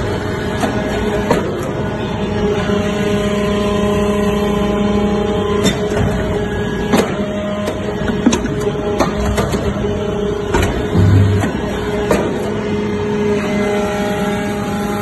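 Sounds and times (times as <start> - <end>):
hydraulic power unit hum: 0.0 - 15.0
sharp metallic knocks: 10.9 - 12.3.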